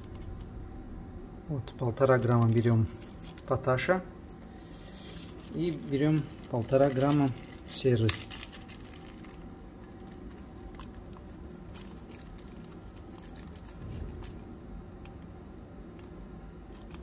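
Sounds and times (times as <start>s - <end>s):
steady low hum: 0.0s - 17.0s
plastic bag crinkling: 2.0s - 3.7s, 5.0s - 15.2s, 16.6s - 17.0s
powder ticking into plastic scoop: 5.4s - 14.4s.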